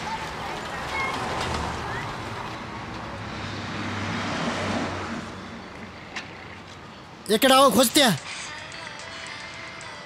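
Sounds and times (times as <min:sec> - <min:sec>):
motor vehicle passing: 0:01.1 - 0:06.6.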